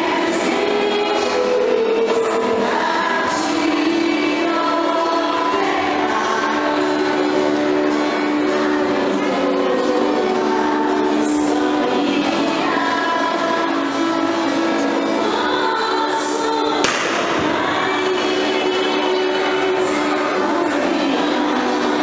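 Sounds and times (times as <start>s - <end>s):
choir singing religious song: 0.0s - 22.0s.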